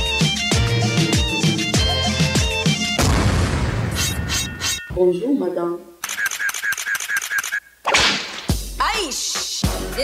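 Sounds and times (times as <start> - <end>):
rapid clicking beeps: 6.0 - 7.7.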